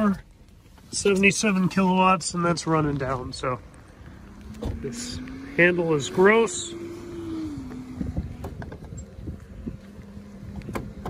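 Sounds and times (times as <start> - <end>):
wind rumble on microphone: 2.7 - 11.0
steady hum: 3.6 - 11.0.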